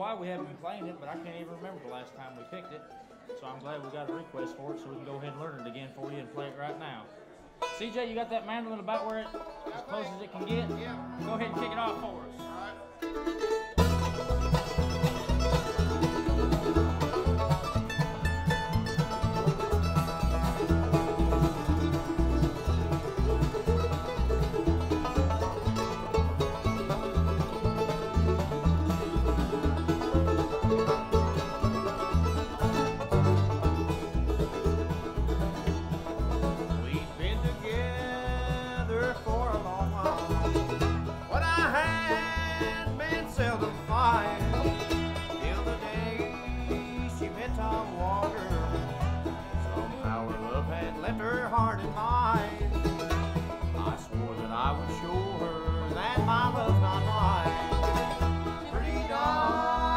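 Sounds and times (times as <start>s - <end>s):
bluegrass band playing: 0.0s - 59.9s
upright bass pulsing: 13.8s - 59.9s.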